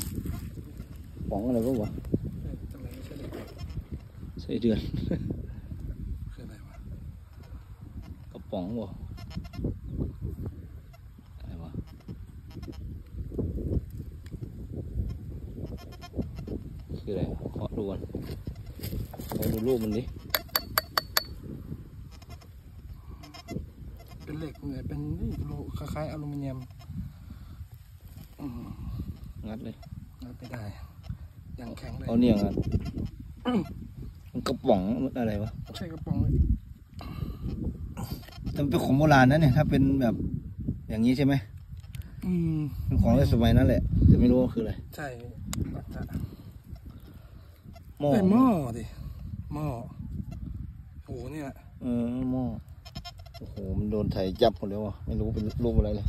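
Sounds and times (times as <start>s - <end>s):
dry soil rustling and crumbling: 0.0s - 4.4s, 16.6s - 21.6s, 27.4s - 30.8s
farm animal calling: 2.9s - 4.2s, 6.5s - 13.1s, 14.9s - 17.0s, 18.3s - 27.4s, 28.2s - 34.2s, 34.8s - 36.3s, 37.1s - 39.8s, 46.0s - 49.2s, 52.6s - 56.0s.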